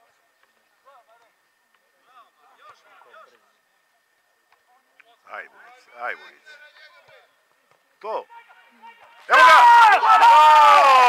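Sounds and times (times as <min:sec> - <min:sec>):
man shouting: 0:08.2 - 0:11.0.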